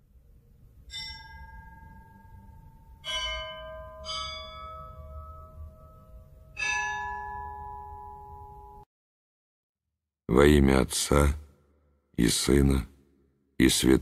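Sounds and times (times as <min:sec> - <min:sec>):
bells ringing at different pitches: 0:00.9 - 0:08.8.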